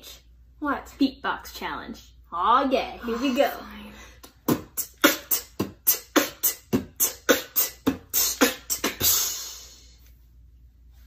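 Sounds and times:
beatboxing vocal drum hits: 4.2s - 9.8s.

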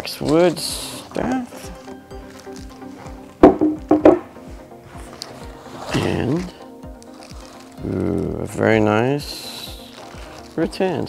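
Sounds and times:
background music with beat: 0.0s - 8.4s
wooden staff knocking on table: 3.4s - 4.3s.

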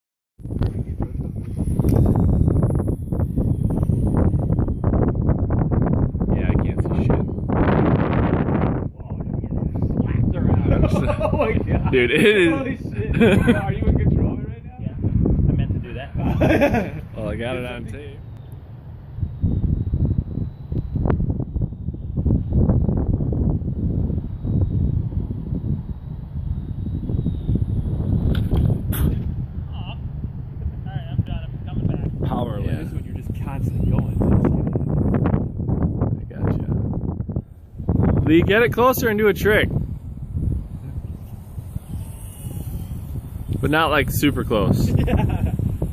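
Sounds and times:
wind buffeting microphone: 0.4s - 45.9s.

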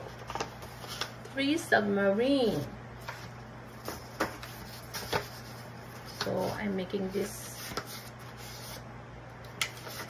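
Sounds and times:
paper rustling: 0.0s - 1.2s, 3.0s - 8.8s.

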